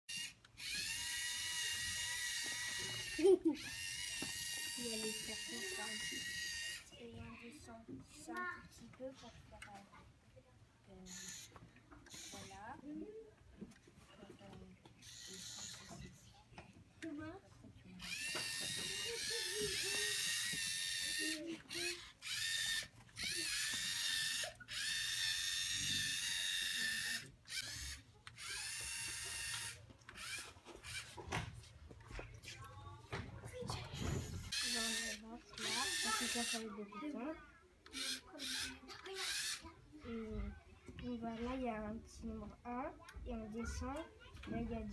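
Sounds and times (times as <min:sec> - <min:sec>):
robot motors whining: 0:00.1 - 0:07.1, 0:11.0 - 0:13.0, 0:15.0 - 0:16.3, 0:18.0 - 0:31.2, 0:33.5 - 0:37.2, 0:37.8 - 0:40.4.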